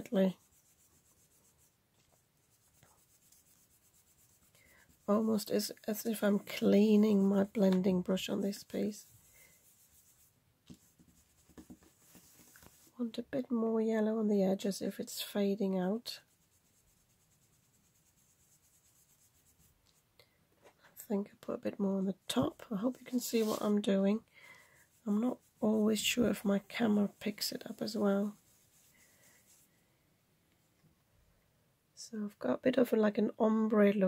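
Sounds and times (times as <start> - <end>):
foam brush rubbing on paper: 0.0 - 13.2, 14.5 - 20.1, 22.1 - 29.8.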